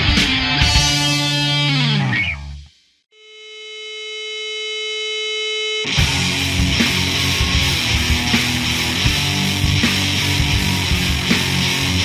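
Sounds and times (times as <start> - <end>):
hardcore punk music: 0.0 - 2.7, 5.8 - 12.0.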